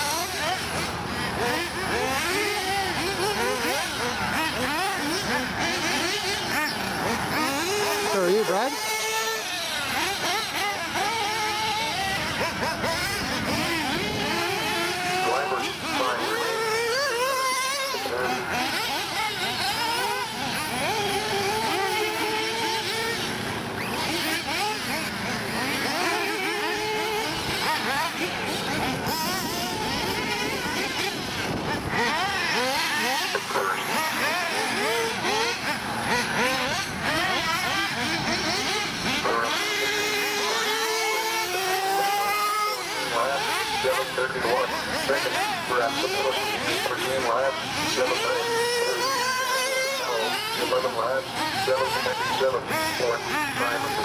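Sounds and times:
rc car engines whining: 0.0s - 54.0s.

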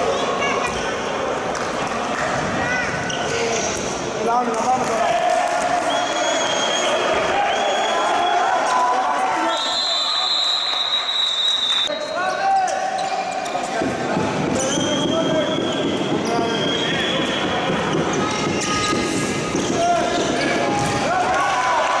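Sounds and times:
players and spectators shouting: 18.6s - 22.0s.

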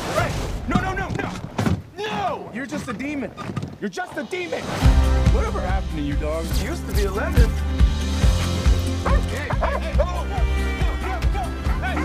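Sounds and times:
trailer music with low beat: 4.7s - 12.0s
dog barking: 9.0s - 10.0s.

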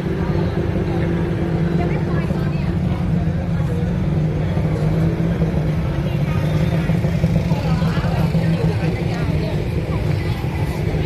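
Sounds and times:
people talking: 0.0s - 11.0s
street traffic rumble: 0.0s - 11.0s.

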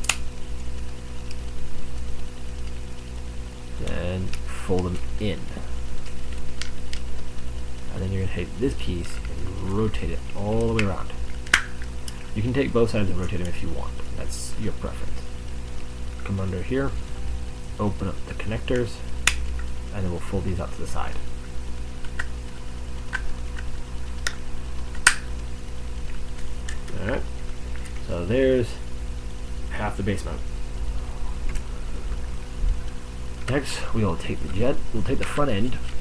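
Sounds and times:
steady low hum: 0.0s - 36.0s.

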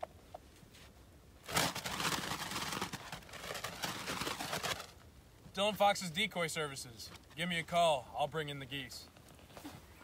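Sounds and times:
fabric flags flapping: 1.4s - 5.0s.

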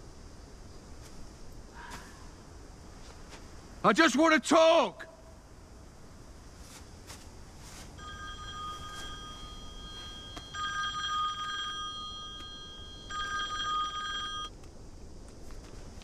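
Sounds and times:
mobile phone ringtone: 8.0s - 14.5s.

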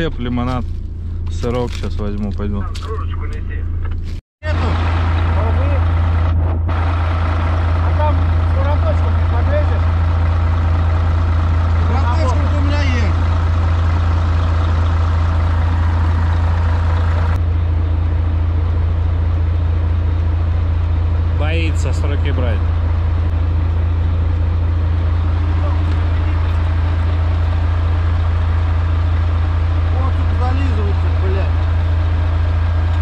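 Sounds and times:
truck diesel engine idling: 4.4s - 33.0s.

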